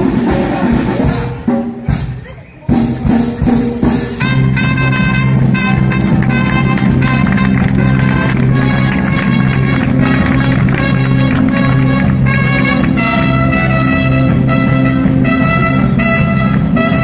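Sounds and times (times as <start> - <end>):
big band playing jazz: 0.0 - 17.0
steady drum beat: 0.0 - 17.0
trumpet solo: 4.1 - 17.0.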